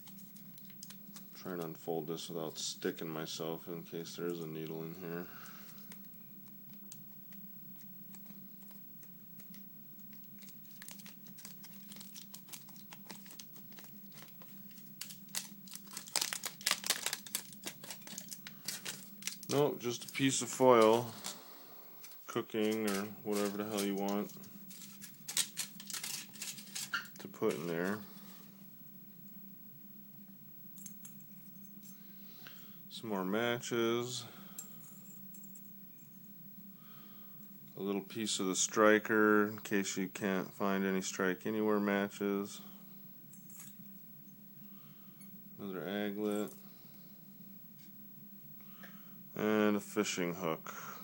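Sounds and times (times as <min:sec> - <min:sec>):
small items clicking and rattling: 0:00.0 - 0:01.4, 0:05.8 - 0:21.4, 0:22.0 - 0:27.7
aluminium foil crinkling: 0:00.0 - 0:01.8, 0:05.1 - 0:28.4
low steady hum: 0:00.0 - 0:51.0.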